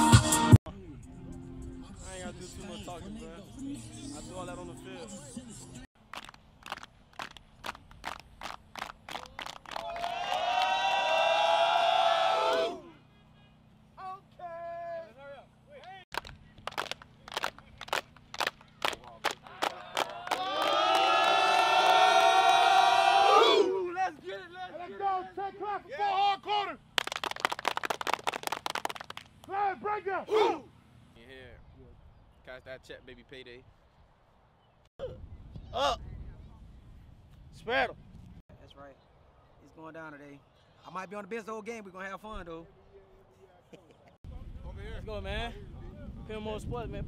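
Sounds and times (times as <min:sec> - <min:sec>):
rapid clapping: 0:06.1 - 0:10.7, 0:15.8 - 0:21.4, 0:26.9 - 0:29.5
team clapping in unison: 0:06.1 - 0:11.2, 0:15.8 - 0:22.8, 0:26.9 - 0:29.6
group shout: 0:09.8 - 0:13.0, 0:19.5 - 0:24.0, 0:29.5 - 0:30.7.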